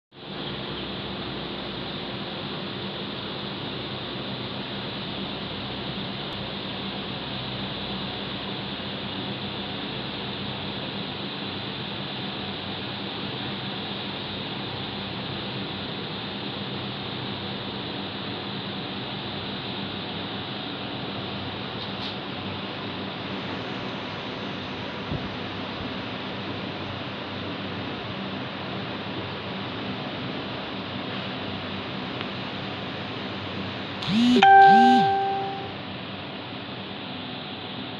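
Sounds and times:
air conditioning units humming: 0:00.2 - 0:37.9.

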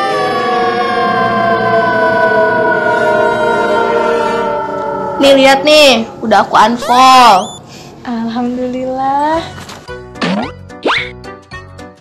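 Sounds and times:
electronic tone sliding down: 0:05.8 - 0:07.6.

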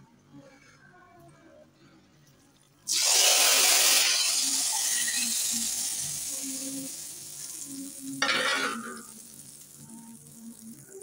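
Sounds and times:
hot oil sizzling: 0:02.9 - 0:11.0.

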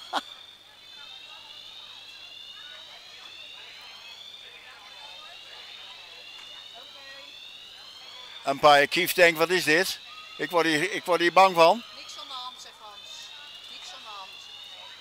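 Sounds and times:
fire alarm siren wailing: 0:00.0 - 0:15.0.

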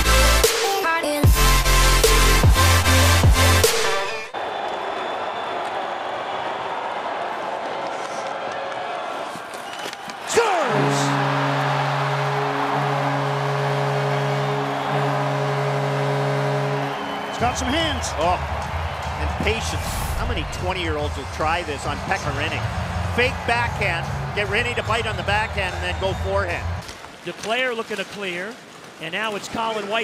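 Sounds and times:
bass-heavy electronic music: 0:00.0 - 0:04.3, 0:10.5 - 0:26.8
multi-note goal horn: 0:01.2 - 0:04.3, 0:10.3 - 0:20.6
crowd cheering: 0:02.0 - 0:30.0.

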